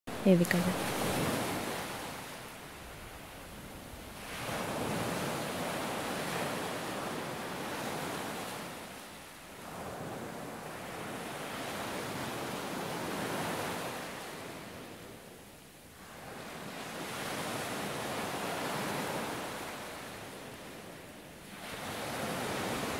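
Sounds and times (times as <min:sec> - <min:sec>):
surf washing onto beach: 0:00.6 - 0:15.2, 0:16.0 - 0:22.9.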